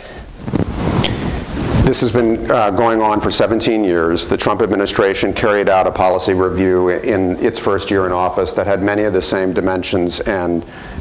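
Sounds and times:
rushing noise on microphone: 0:00.0 - 0:11.0
man talking: 0:01.0 - 0:11.0.

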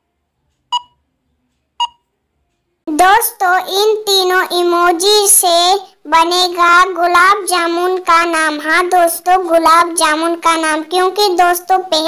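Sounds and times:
electronic timer beep: 0:00.7 - 0:01.0, 0:01.8 - 0:02.1
person speaking: 0:02.9 - 0:12.0.

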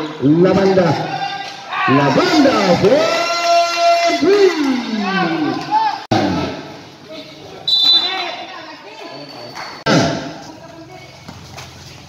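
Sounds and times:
people shouting and calling out: 0:00.0 - 0:11.1.

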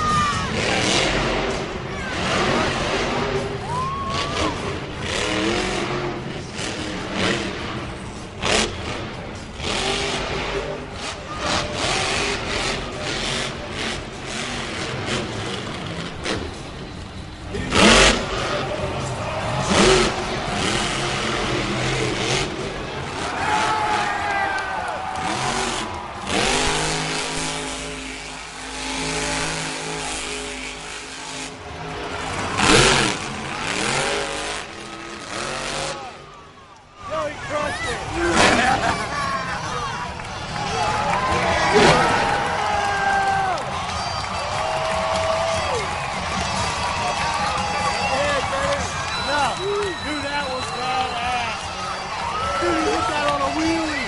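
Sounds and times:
loud arena noise: 0:00.0 - 0:54.0
monster truck engine revving: 0:00.0 - 0:54.0.

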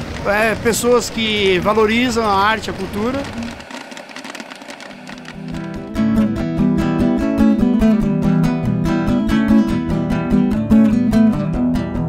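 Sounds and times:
popcorn popping in a metal pot: 0:00.0 - 0:06.0
guitar music: 0:04.9 - 0:12.0.

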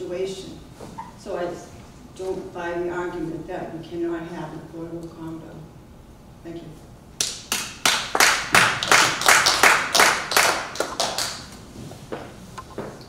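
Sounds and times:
people clapping: 0:07.2 - 0:11.6.

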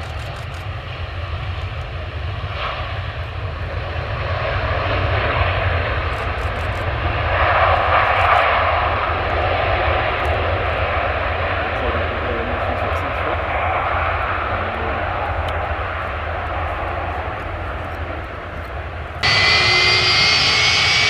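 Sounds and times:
constant low rumble: 0:00.0 - 0:21.0
jet engines rushing: 0:00.0 - 0:21.0.

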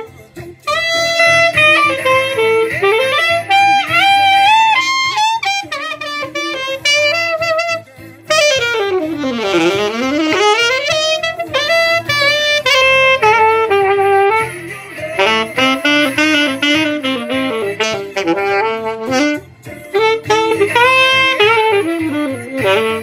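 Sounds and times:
alto saxophone solo: 0:00.0 - 0:23.0.

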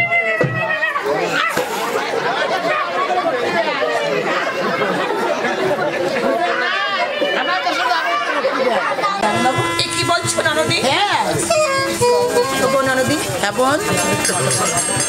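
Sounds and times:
instrumental music with held notes: 0:09.2 - 0:15.0.

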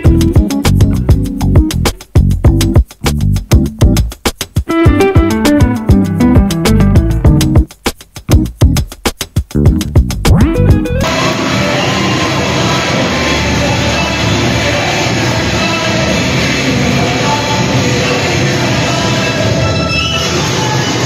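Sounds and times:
loud dance music: 0:00.0 - 0:19.6.

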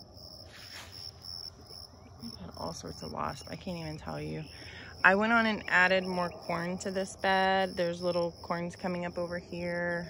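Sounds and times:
insects chirping: 0:00.0 - 0:10.0
soft hiss: 0:00.4 - 0:01.7.

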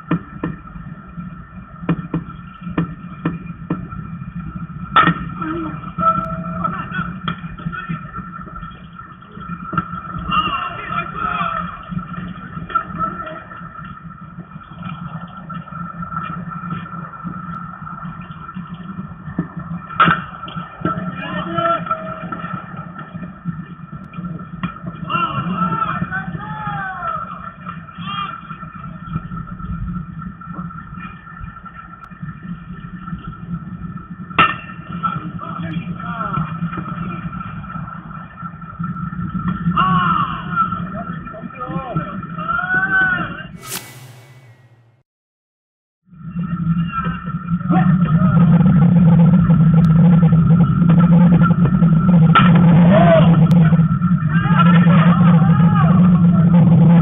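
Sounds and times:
sharp knock: 0:43.6 - 0:45.0.

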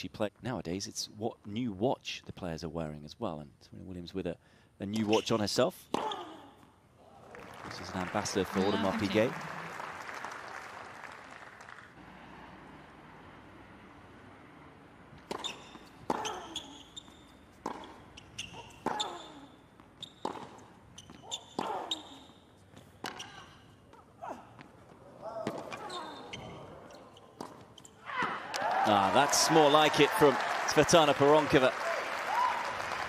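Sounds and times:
shoe squeaks: 0:05.0 - 0:06.6, 0:15.3 - 0:24.5, 0:25.3 - 0:28.2
crowd applause: 0:07.2 - 0:12.0, 0:28.4 - 0:33.0
tennis ball bounces: 0:15.2 - 0:22.1, 0:27.4 - 0:28.6.

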